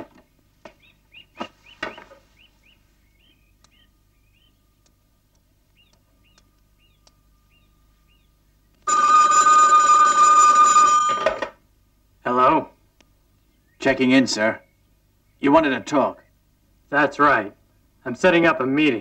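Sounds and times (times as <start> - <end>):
telephone ringing: 8.8 - 11.6.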